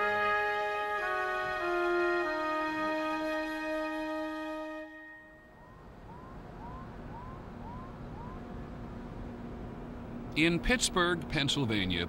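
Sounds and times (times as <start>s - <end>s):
low rumbling industrial noise: 0.0s - 12.0s.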